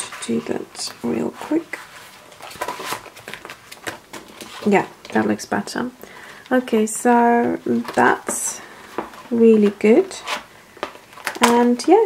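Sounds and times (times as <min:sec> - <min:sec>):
paper rustling: 0:00.0 - 0:05.5.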